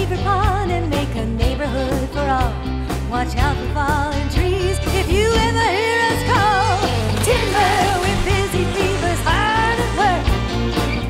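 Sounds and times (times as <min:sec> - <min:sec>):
band playing bass and drums: 0:04.3 - 0:11.0.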